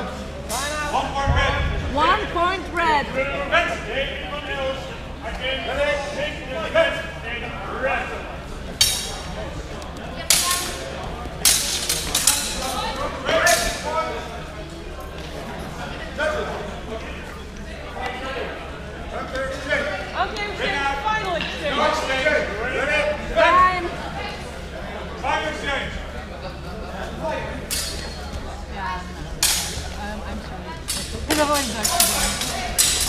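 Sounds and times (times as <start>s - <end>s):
voices in a large hall: 0.0s - 33.0s
steel swords clashing: 8.8s - 9.2s, 31.6s - 33.0s.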